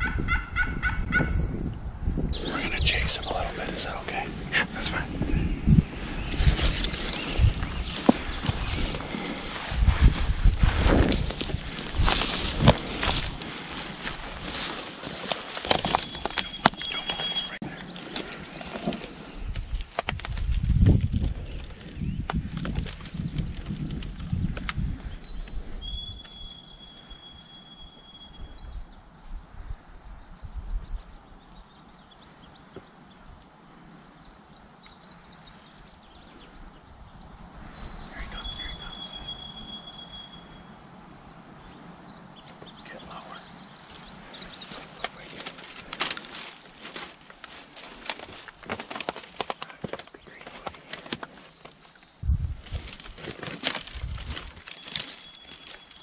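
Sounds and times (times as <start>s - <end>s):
footsteps crunching through dry grass: 6.2s - 24.0s, 42.6s - 56.0s.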